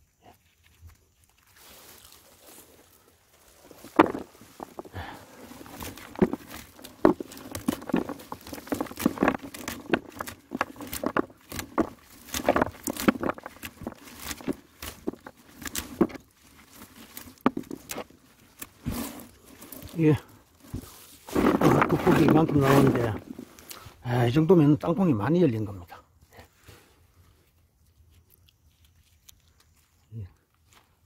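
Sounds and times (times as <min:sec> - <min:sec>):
dry roots rustling: 0:00.4 - 0:25.9, 0:26.5 - 0:31.0.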